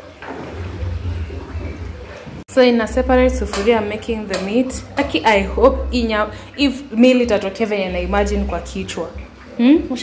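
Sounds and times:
water sloshing and dripping: 0.0s - 10.0s
low rumble: 0.4s - 6.5s.

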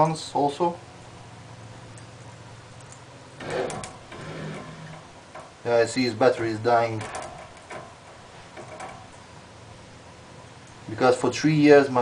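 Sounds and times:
electric motor humming: 3.4s - 5.6s.

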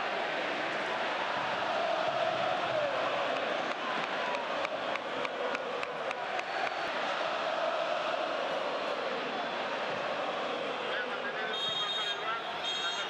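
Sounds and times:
stadium crowd roar: 0.0s - 13.0s.

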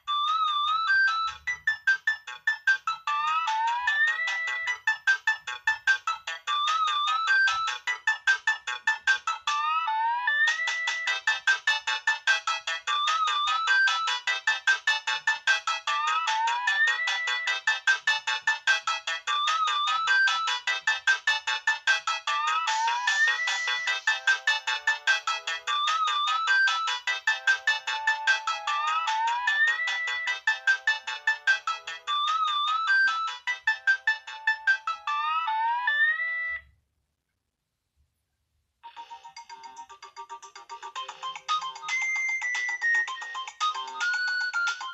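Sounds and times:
synth ringtone melody: 0.0s - 36.7s, 38.8s - 44.9s.

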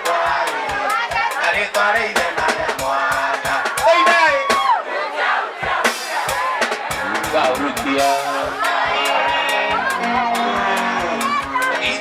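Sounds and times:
drums and bass: 0.0s - 4.8s, 5.6s - 12.0s
crowd noise: 0.0s - 12.0s
high held vocal call: 5.9s - 12.0s.

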